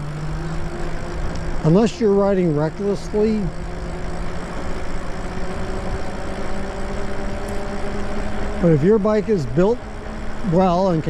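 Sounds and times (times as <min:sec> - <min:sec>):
electric motor hum: 0:00.0 - 0:11.0
tyres and wind rushing: 0:00.0 - 0:11.0.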